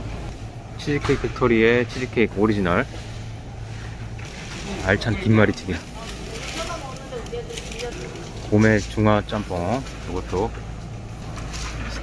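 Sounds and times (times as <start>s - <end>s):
freezer low hum: 0.0s - 12.0s.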